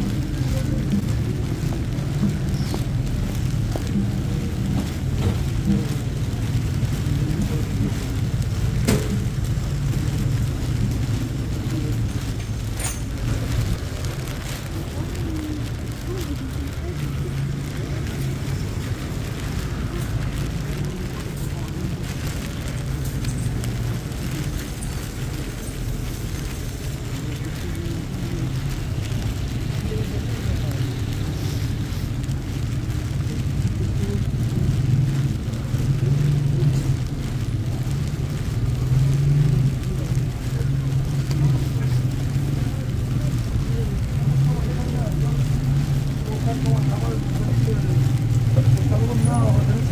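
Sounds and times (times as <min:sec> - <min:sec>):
indistinct voices of passersby: 0:00.0 - 0:49.9
traffic rumble on wet road: 0:00.0 - 0:49.9.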